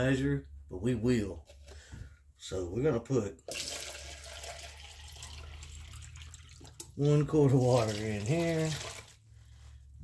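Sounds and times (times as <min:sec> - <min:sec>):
tap water running into a can: 0:03.4 - 0:09.2.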